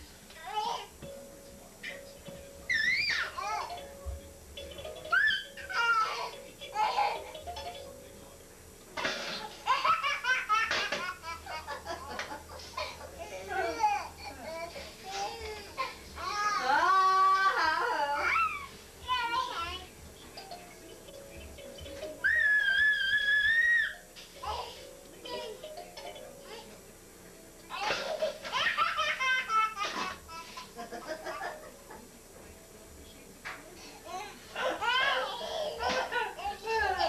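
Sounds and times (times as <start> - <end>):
toddler laughing: 5.1 - 7.4, 9.6 - 14.6, 27.7 - 31.7, 34.1 - 37.0.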